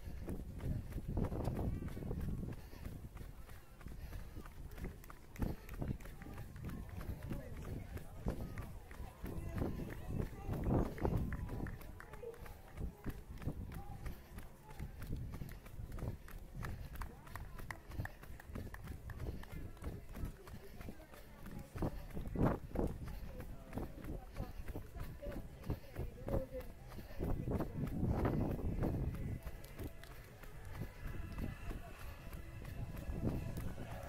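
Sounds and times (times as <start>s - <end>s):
wind rumbling on microphone: 0.0s - 12.0s, 12.6s - 34.0s
footsteps on asphalt: 0.0s - 34.0s
people's voices: 0.0s - 34.0s.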